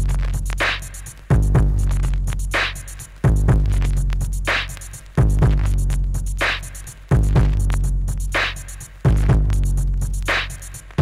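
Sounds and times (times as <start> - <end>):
hi-hats: 0.0 - 11.0
looped breakbeat: 0.0 - 11.0.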